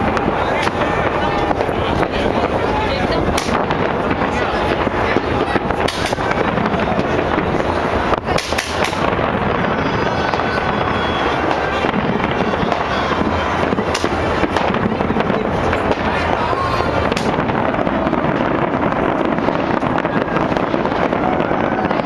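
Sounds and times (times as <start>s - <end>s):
firework bangs: 0.0s - 22.0s
fireworks crackling and popping: 0.0s - 22.0s.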